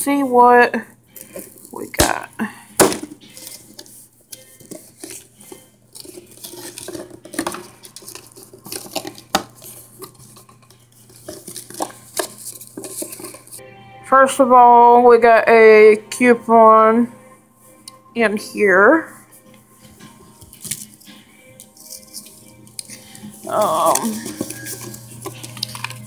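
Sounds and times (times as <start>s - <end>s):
paper and cardboard rustling: 2.8s - 13.6s, 19.8s - 26.0s.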